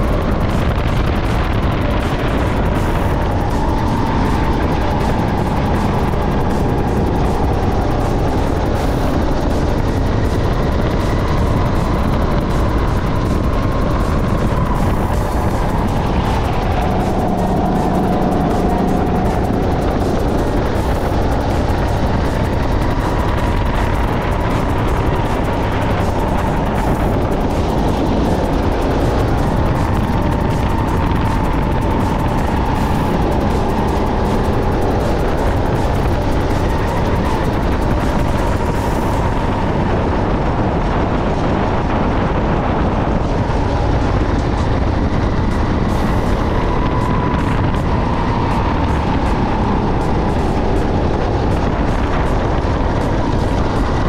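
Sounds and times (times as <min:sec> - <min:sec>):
kart engine running hard: 0:00.0 - 0:54.0.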